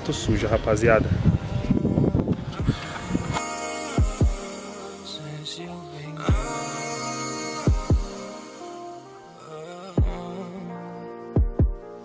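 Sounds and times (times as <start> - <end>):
wind buffeting microphone: 0.0 - 3.4.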